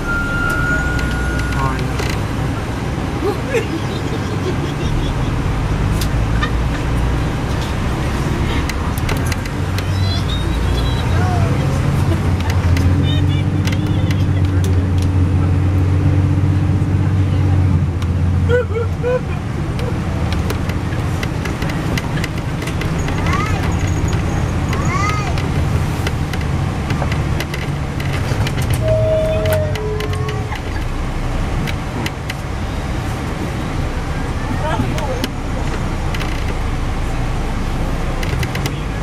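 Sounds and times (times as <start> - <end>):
coach engine and road drone: 0.0 - 39.0.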